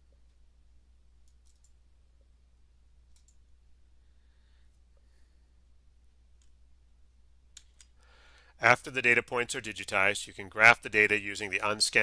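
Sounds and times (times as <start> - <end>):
low steady hum: 0.0 - 12.0
faint clicks: 1.2 - 1.8, 3.1 - 3.6, 6.4 - 6.6, 7.5 - 8.5.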